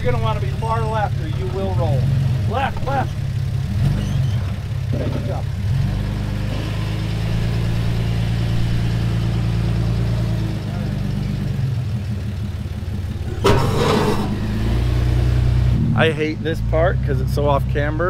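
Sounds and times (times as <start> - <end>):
car engine running at low revs: 0.0 - 18.0.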